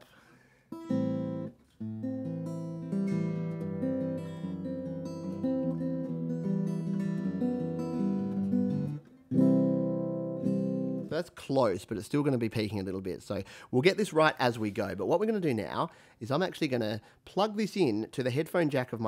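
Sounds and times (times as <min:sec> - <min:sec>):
acoustic guitar strumming chords: 0:00.8 - 0:11.1.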